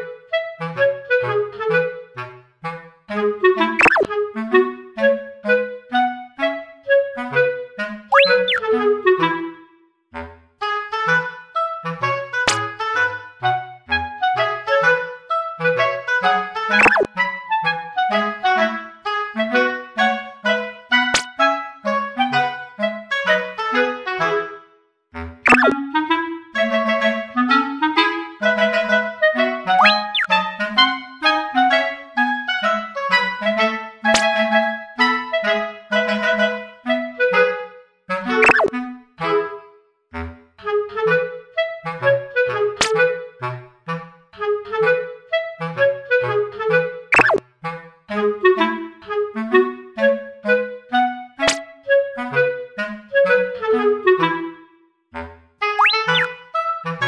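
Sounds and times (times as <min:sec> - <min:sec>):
woodwind melody: 0:00.0 - 0:09.9, 0:10.6 - 0:57.0.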